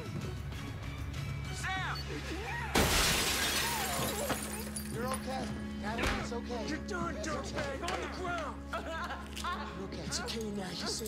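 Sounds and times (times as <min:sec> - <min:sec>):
glass pane shattering: 0:02.7 - 0:05.2.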